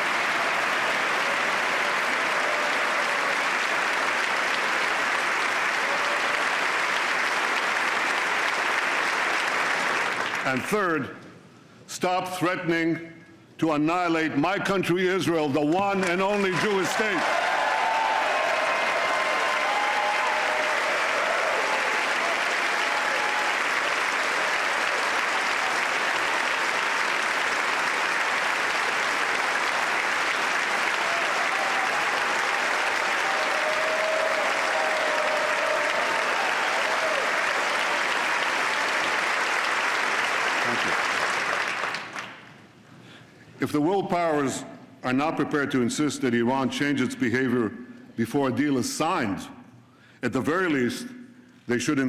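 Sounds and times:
large audience applauding: 0.0s - 10.7s, 15.7s - 42.7s.

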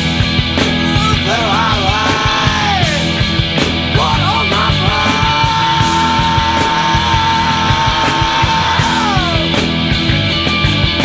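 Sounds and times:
loud noise-rock band: 0.0s - 11.0s.

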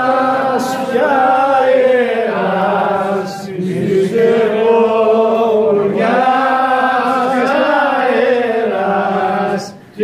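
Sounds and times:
men singing unaccompanied: 0.0s - 10.0s.

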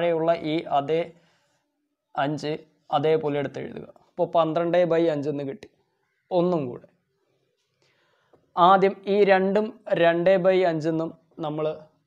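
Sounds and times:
man speaking: 0.0s - 1.2s, 2.2s - 7.0s, 8.6s - 12.0s.

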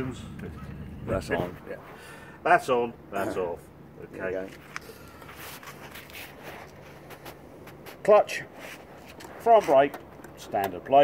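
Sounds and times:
low steady background hum: 0.0s - 11.0s
faint footsteps: 4.4s - 9.8s
shuffling: 4.4s - 9.9s.

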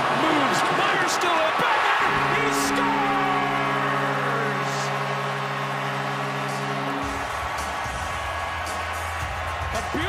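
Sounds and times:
crowd cheering: 0.0s - 10.0s
arena goal horn: 1.8s - 9.0s
bass-heavy music: 2.0s - 10.0s.

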